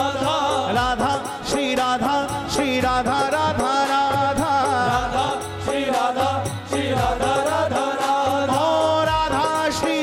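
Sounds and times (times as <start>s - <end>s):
accompanying music: 0.0s - 10.0s
chant-like devotional singing: 0.0s - 10.0s
steady percussion beat: 0.0s - 10.0s.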